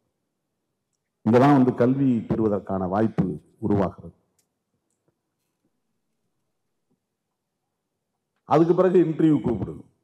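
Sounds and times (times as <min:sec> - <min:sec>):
man speaking into a microphone: 0:01.2 - 0:04.2, 0:08.4 - 0:10.0.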